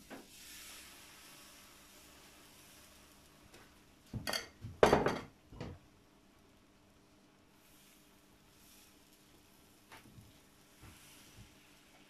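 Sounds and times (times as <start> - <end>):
batter sizzling on hot plate: 0.0 - 5.7, 6.6 - 12.0.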